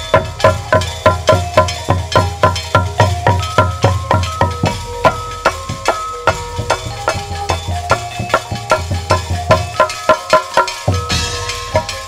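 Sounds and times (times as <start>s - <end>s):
drum strokes: 0.0s - 12.0s
metallic shimmer: 0.0s - 12.0s
struck metal instruments ringing: 0.0s - 12.0s.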